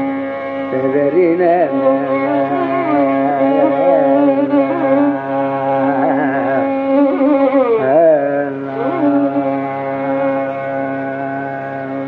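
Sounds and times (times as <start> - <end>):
ornamented melodic line: 0.0 - 12.0
steady drone: 0.0 - 12.0.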